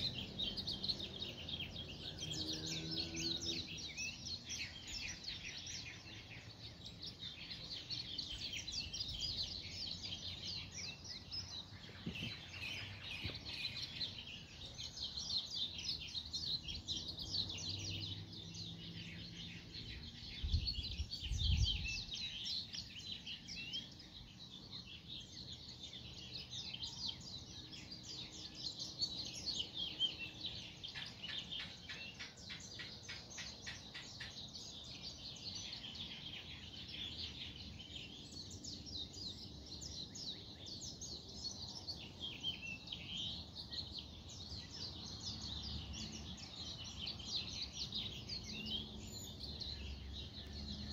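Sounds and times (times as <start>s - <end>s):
birds chirping: 0.0s - 50.9s.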